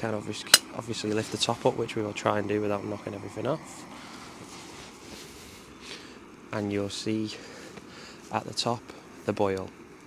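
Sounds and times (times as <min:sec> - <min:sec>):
gas burner hissing: 0:00.0 - 0:10.0.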